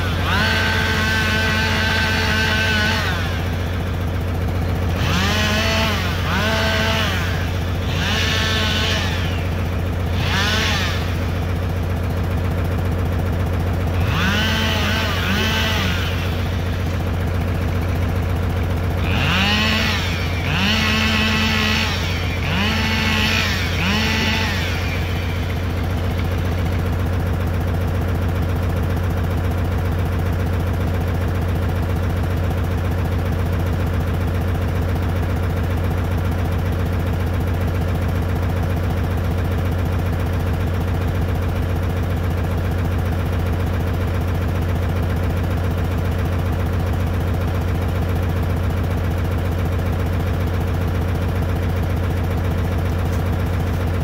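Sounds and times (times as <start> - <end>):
engine idling: 0.0 - 54.0.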